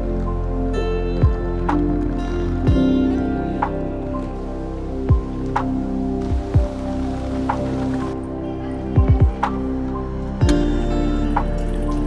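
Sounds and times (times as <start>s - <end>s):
background music with held chords: 0.0s - 12.0s.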